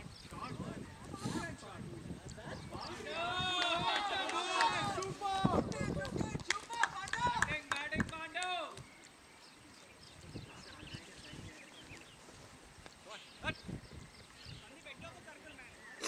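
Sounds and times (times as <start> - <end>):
people's voices: 0.0 - 8.8.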